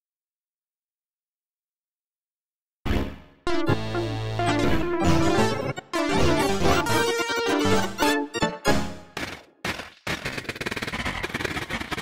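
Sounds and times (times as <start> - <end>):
electronic synthesizer music: 2.9 - 9.2
rapid clicking drum-like pulses: 9.1 - 12.0.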